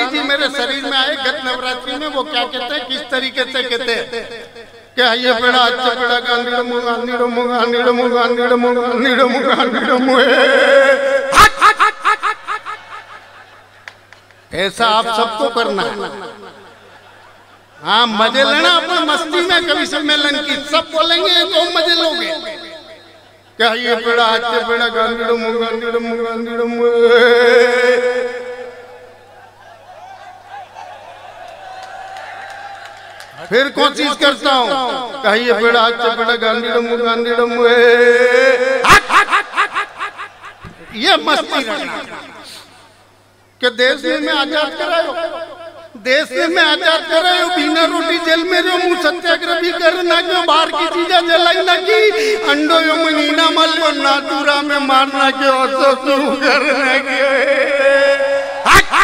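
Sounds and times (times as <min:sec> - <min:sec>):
man yelping rapidly: 0:10.4 - 0:12.4
man laughing: 0:10.6 - 0:14.1, 0:38.4 - 0:42.6.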